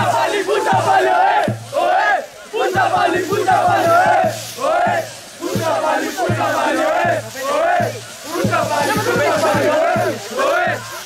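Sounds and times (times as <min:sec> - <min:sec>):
bass drum beats: 0:00.0 - 0:11.0
crowd chanting in unison: 0:00.0 - 0:11.0.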